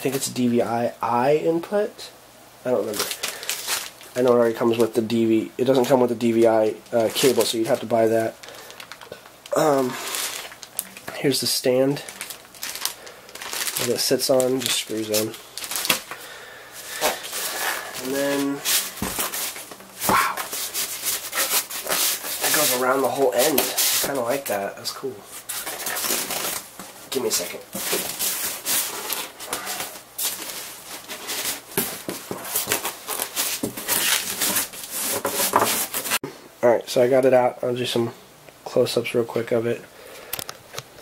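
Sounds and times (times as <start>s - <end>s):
plastic bag rustling: 2.8s - 5.0s, 5.6s - 36.2s
foam scrape: 16.8s - 24.3s
hands rubbing polystyrene foam: 16.8s - 24.4s.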